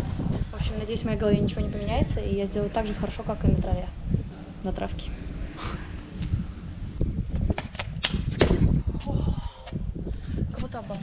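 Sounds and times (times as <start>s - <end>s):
wind on microphone: 0.0s - 11.0s.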